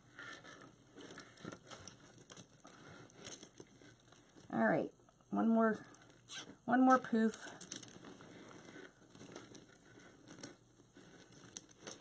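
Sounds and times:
plastic mesh rustling and crinkling: 0.0 - 4.6, 5.8 - 12.0.

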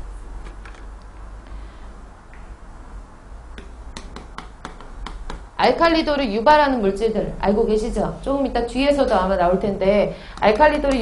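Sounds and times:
chalk clicking on a blackboard: 3.6 - 5.5.

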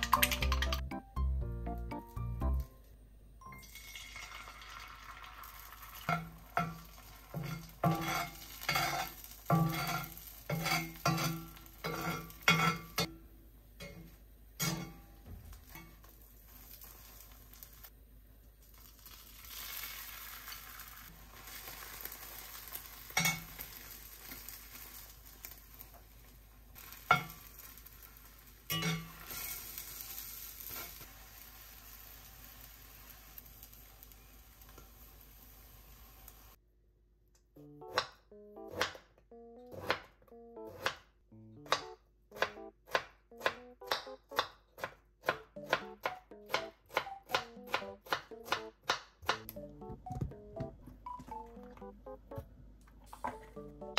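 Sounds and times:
egg sizzling in a skillet: 3.6 - 13.1, 15.6 - 18.0, 18.6 - 36.6
metal spatula clanking on pan: 7.4 - 13.1, 13.8 - 15.1, 28.7 - 29.2
knife chopping on cutting board: 41.6 - 49.5.

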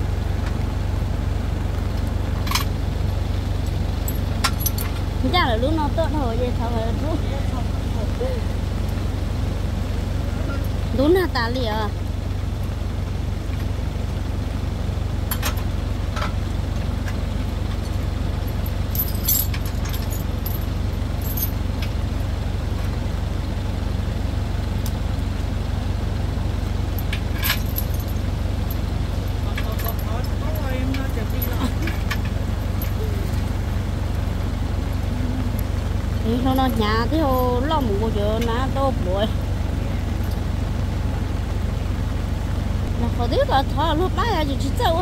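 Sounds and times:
vehicle engine idling: 0.0 - 45.0
metallic clinks of tow hitch: 3.6 - 5.1, 17.0 - 22.0, 26.9 - 33.5
faint voices: 34.4 - 40.4.

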